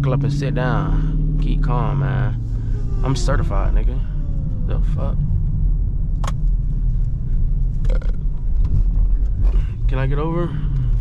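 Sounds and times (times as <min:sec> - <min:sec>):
car engine rumbling inside cabin: 0:00.0 - 0:11.0.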